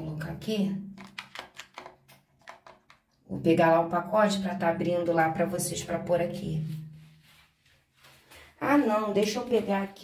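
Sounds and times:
plastic containers clicking and tapping: 0:00.9 - 0:03.2.

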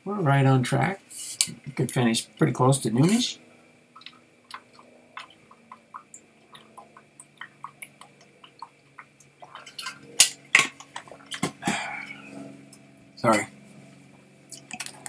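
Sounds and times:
person gulping water: 0:04.0 - 0:10.0, 0:10.8 - 0:12.1.

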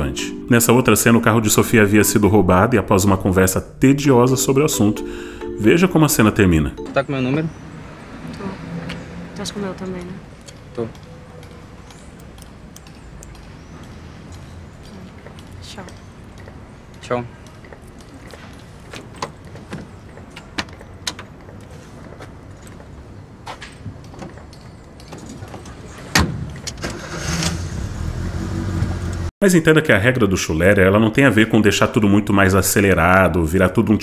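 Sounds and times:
distant traffic hum: 0:00.0 - 0:34.0.

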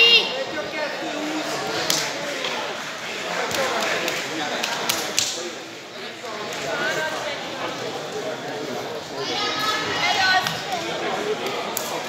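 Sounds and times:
onlookers talking and calling out: 0:00.0 - 0:12.0.

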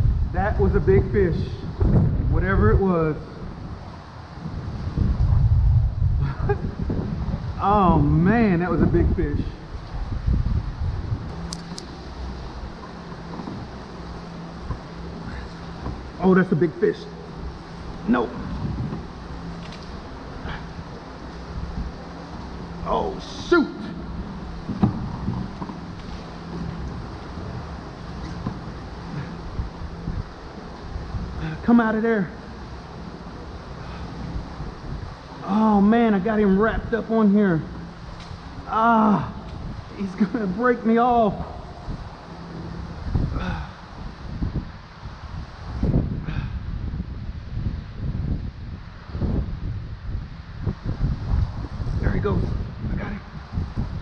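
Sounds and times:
low steady hum: 0:00.0 - 0:54.0
wind buffeting microphone: 0:00.0 - 0:54.0.

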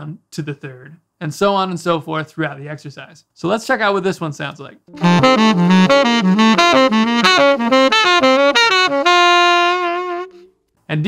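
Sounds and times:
tenor saxophone arpeggios: 0:04.9 - 0:10.5.

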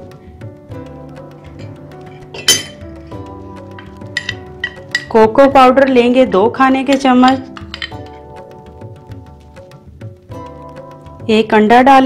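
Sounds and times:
soft background music: 0:00.0 - 0:12.0
metal spoon clinking glass bowl: 0:01.5 - 0:05.2, 0:06.8 - 0:08.2.

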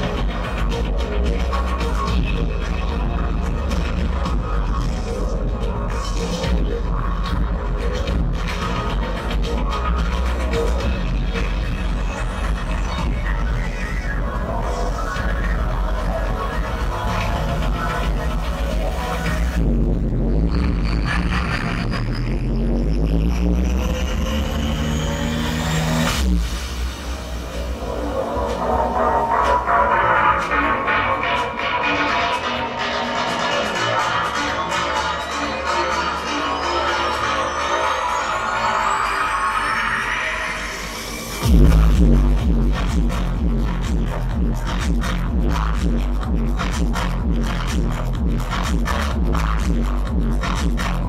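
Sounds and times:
electronic music with heavy bass: 0:00.0 - 0:51.0
rising sweep: 0:22.8 - 0:33.4.

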